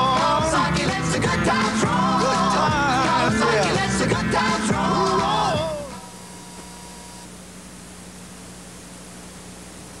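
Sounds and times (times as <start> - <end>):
tape hiss: 0.0 - 10.0
low steady hum: 1.8 - 10.0.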